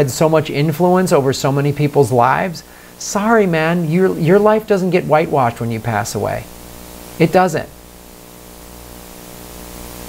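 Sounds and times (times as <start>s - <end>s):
constant hiss: 0.0s - 10.0s
electrical hum with buzz: 0.0s - 10.0s.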